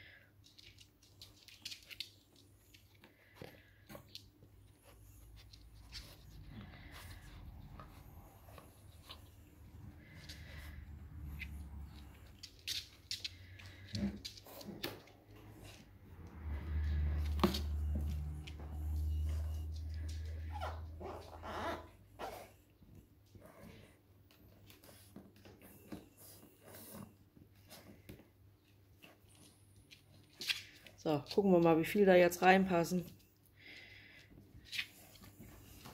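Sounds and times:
puppy vocal sounds: 0:19.5 - 0:22.6.

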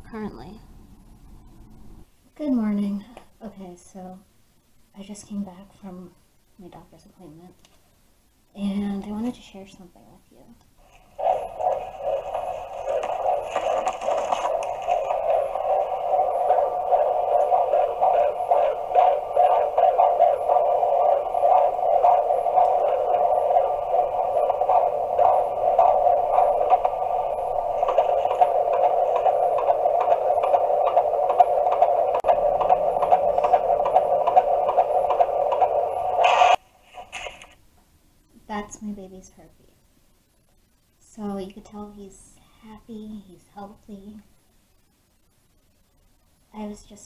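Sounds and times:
fetal heartbeat pulsing whoosh: 0:10.8 - 0:37.3.

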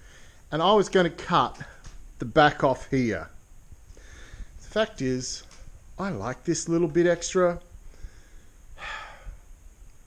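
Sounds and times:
man breathing: 0:00.0 - 0:00.5, 0:03.9 - 0:04.7, 0:07.8 - 0:09.6.

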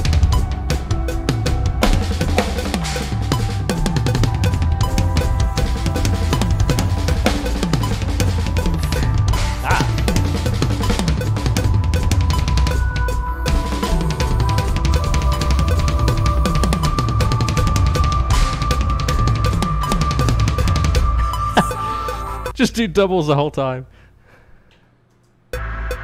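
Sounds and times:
electronic drum kit playing: 0:00.0 - 0:22.7, 0:25.6 - 0:26.0
metal backing track: 0:00.0 - 0:23.7.

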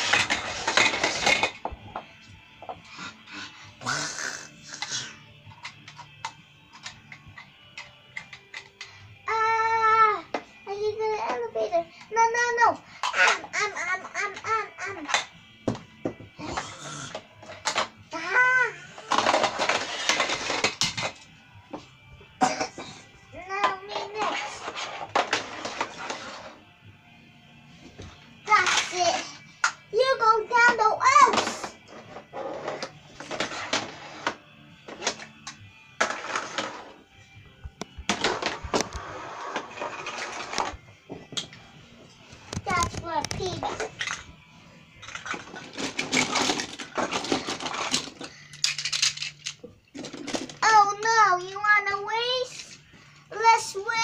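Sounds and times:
toy cars clattering down ramp: 0:00.0 - 0:01.6, 0:19.1 - 0:21.2, 0:45.0 - 0:50.6
child making sing-song sounds: 0:09.2 - 0:15.3, 0:18.1 - 0:19.0, 0:23.3 - 0:24.7, 0:28.4 - 0:31.8, 0:42.6 - 0:43.9, 0:50.6 - 0:52.7, 0:53.3 - 0:54.0.

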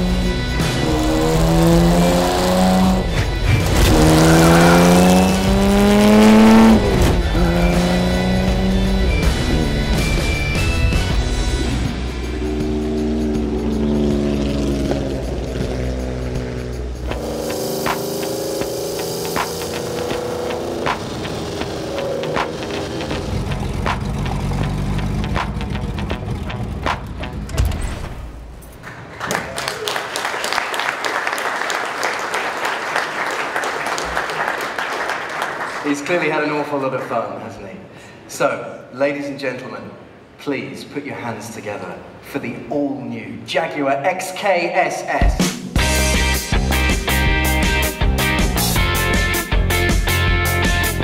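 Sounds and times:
car engine revving: 0:00.0 - 0:28.6
film soundtrack music: 0:00.0 - 0:28.8, 0:45.4 - 0:51.0
crowd noise in a hall: 0:28.8 - 0:35.8.

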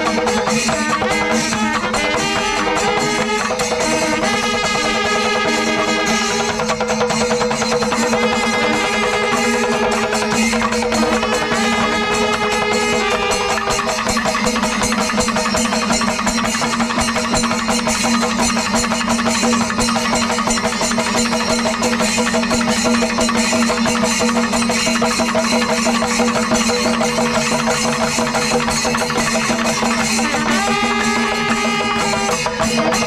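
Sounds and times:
cymbals clashing: 0:00.0 - 0:33.0
fast drumming: 0:00.0 - 0:33.0.

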